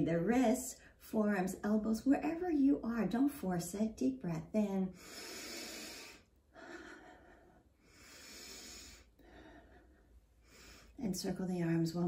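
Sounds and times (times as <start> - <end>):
woman breathing deeply: 4.9 - 11.0.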